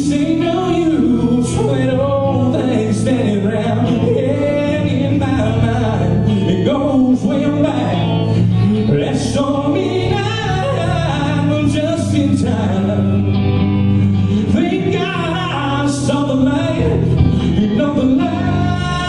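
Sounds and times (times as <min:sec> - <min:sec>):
band playing gospel song: 0:00.0 - 0:19.0
man singing lead: 0:00.0 - 0:19.0.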